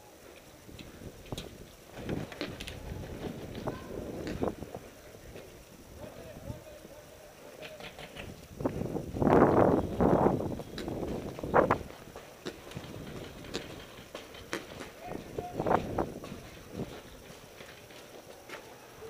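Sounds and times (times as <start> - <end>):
footsteps on dirt and grass: 8.6 - 18.8.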